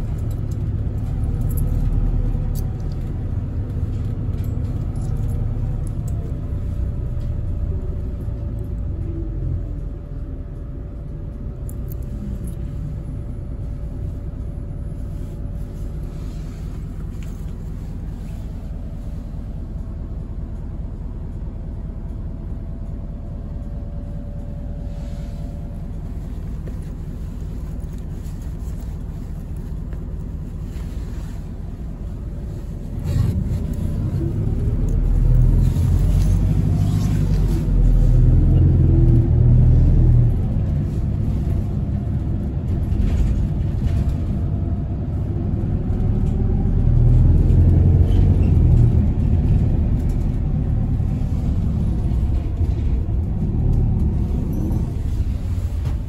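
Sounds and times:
bus engine: 0:00.0 - 0:56.0
road rumble: 0:00.0 - 0:56.0.

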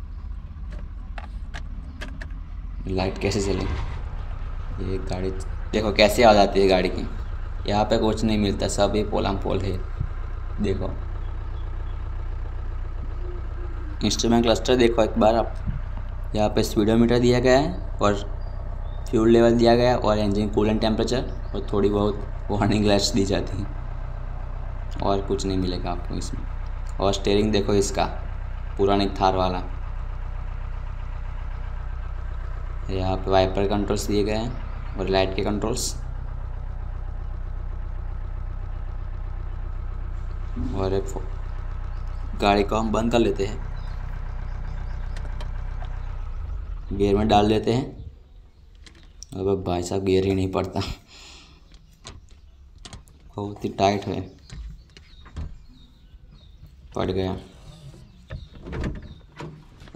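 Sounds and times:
diesel engine idling: 0:00.0 - 0:59.9.

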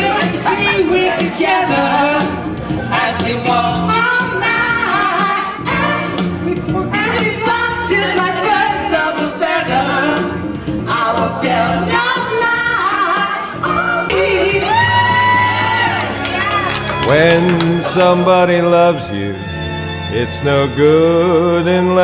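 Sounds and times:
women singing into microphones: 0:00.0 - 0:16.0
karaoke backing track: 0:00.0 - 0:22.0.

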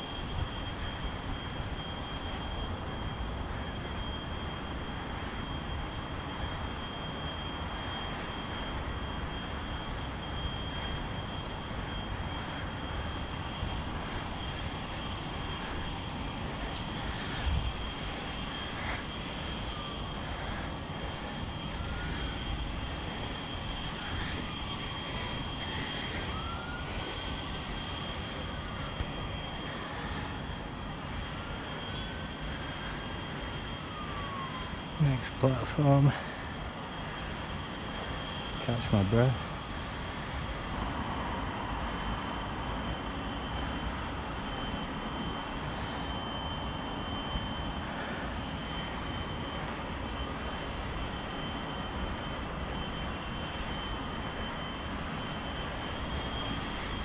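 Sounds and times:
distant town rumble: 0:00.0 - 0:44.4, 0:47.6 - 0:57.0
faint high whine: 0:00.0 - 0:57.0
faint siren wails: 0:00.0 - 0:57.0.

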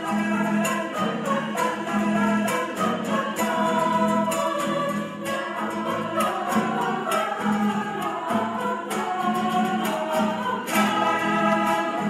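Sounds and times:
choir singing sustained notes: 0:00.0 - 0:12.0.

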